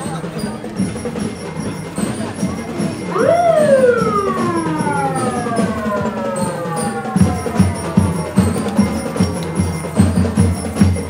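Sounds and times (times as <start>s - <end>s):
siren wailing: 3.0s - 9.5s.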